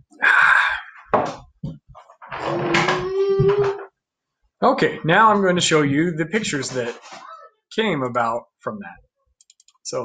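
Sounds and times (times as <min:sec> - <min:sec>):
child making loud noises: 0:02.5 - 0:03.9
child wailing: 0:02.6 - 0:03.9.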